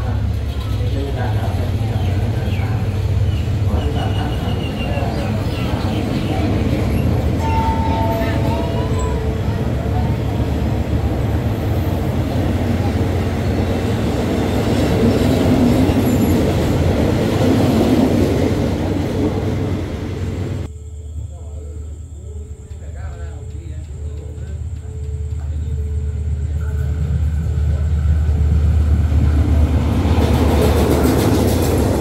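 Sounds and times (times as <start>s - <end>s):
train wheels rumbling on rails: 0.0s - 20.7s, 22.5s - 32.0s
brief high tones: 7.4s - 10.2s.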